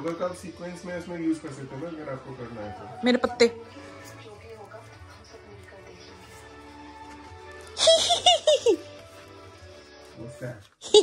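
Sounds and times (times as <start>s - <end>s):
quiet background music: 0.0s - 11.0s
high-pitched giggling: 7.8s - 8.8s.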